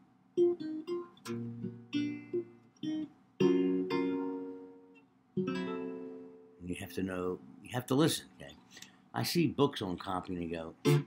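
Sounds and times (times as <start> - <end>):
jazz guitar chords: 0.4 - 6.6, 10.7 - 11.0.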